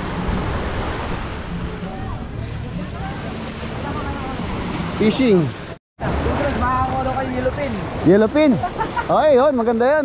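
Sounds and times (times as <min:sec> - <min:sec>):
wind rumbling on microphone: 0:00.0 - 0:09.0
surf washing onto sand: 0:00.0 - 0:10.0.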